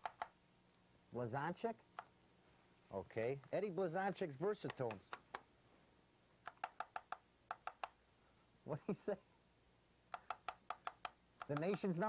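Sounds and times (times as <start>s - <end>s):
puppet beak clacking: 0.0s - 0.4s, 6.4s - 8.0s, 10.1s - 12.0s
person talking: 2.9s - 5.2s, 8.6s - 9.3s, 11.4s - 12.0s.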